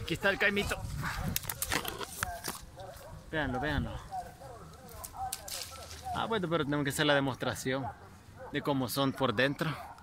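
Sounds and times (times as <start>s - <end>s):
tree leaves rustling: 4.0s - 7.2s.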